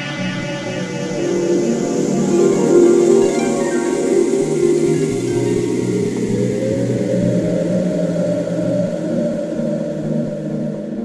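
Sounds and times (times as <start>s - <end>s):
low synth drone: 0.0s - 11.0s.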